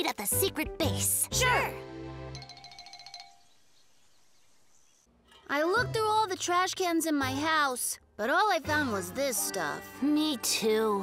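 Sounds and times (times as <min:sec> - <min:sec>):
tinkling chime: 0:02.3 - 0:04.6.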